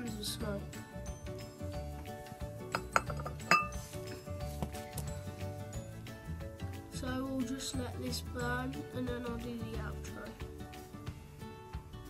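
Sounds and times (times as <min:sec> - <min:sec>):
background music: 0:00.0 - 0:12.0
plate clinking on stone: 0:02.7 - 0:04.3.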